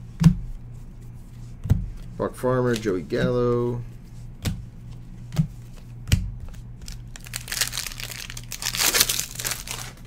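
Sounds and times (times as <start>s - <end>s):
plastic wrapper crinkling: 6.8s - 10.0s.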